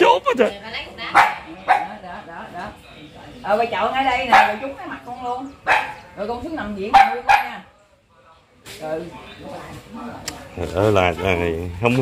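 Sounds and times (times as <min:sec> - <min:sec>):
dog barking: 0:01.1 - 0:02.0, 0:04.2 - 0:04.8, 0:05.6 - 0:06.2, 0:06.9 - 0:07.7.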